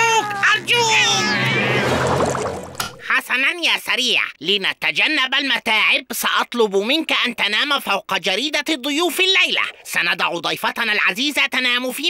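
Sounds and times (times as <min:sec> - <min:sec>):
cartoon creature yowling: 0:00.0 - 0:02.1
wash of sound: 0:00.7 - 0:03.1.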